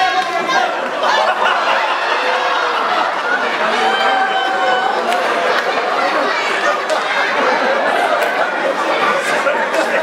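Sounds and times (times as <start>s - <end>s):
crowd chattering: 0.0s - 10.0s.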